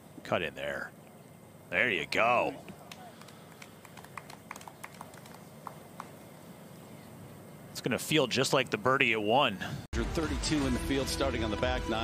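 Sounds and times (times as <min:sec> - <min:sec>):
scattered single claps: 0:02.7 - 0:06.3.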